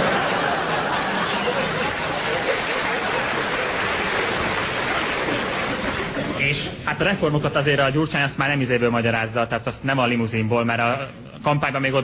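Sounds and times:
audience applauding: 0:00.0 - 0:06.6.

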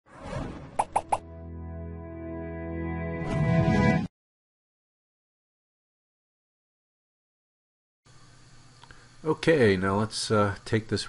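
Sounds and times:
held chord: 0:01.3 - 0:03.2.

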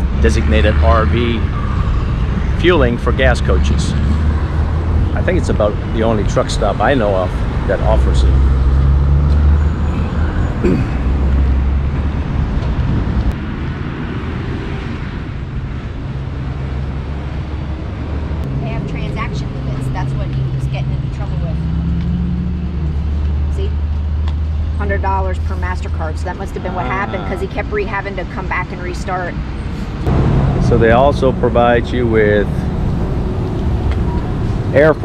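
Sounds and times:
vehicle engine idling: 0:02.6 - 0:08.3, 0:30.0 - 0:35.0
faint voices: 0:05.2 - 0:08.3, 0:26.4 - 0:27.8, 0:30.6 - 0:32.6.

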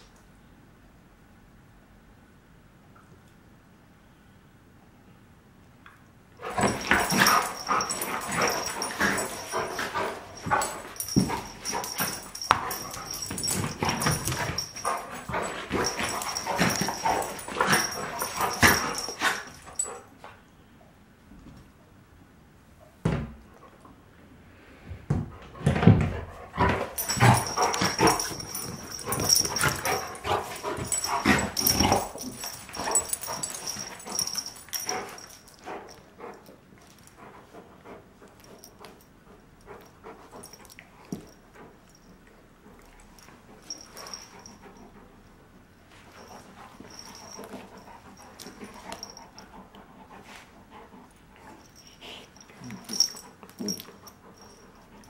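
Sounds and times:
dogs barking and yipping: 0:06.5 - 0:20.0, 0:26.8 - 0:35.9.

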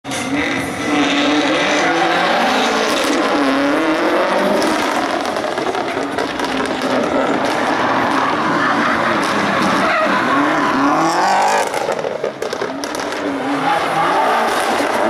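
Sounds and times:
car engine revving: 0:00.1 - 0:15.0
tyre noise: 0:02.9 - 0:15.0.

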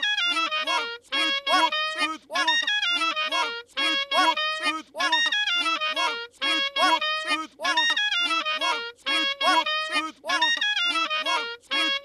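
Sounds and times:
looped cartoon voice phrase: 0:00.0 - 0:12.0.

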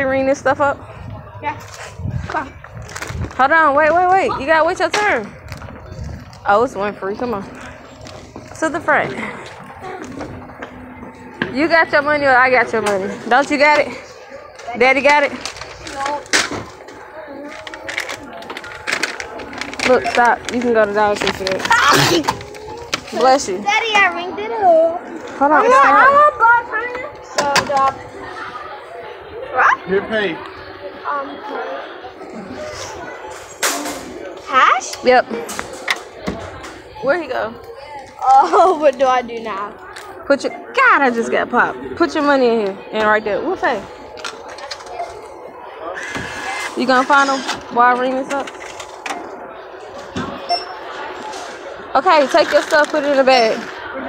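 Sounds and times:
faint voices: 0:00.0 - 0:54.0
plastic packets crackling: 0:16.9 - 0:23.1.

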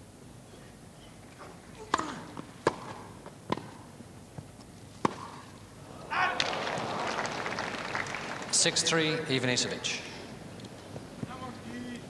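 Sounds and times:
rackets striking tennis ball: 0:01.8 - 0:05.6
crowd applauding: 0:06.1 - 0:09.3.

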